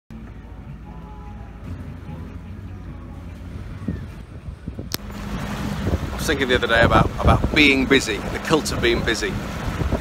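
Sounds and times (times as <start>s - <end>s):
boat engine rumbling: 0.1s - 10.0s
wind on microphone: 3.5s - 10.0s.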